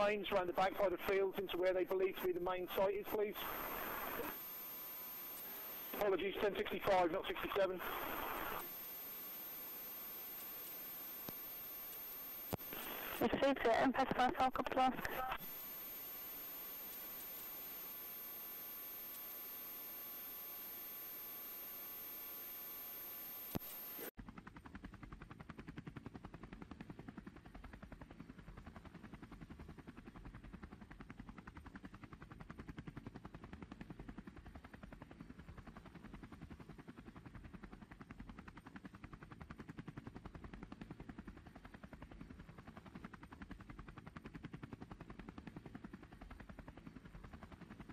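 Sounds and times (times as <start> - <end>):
helicopter rotor chopping: 0.0 - 18.6, 24.2 - 47.9
hum: 0.0 - 24.1.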